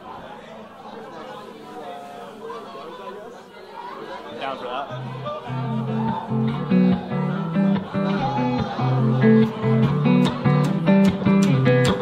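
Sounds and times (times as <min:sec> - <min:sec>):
audience chatting: 0:00.0 - 0:12.0.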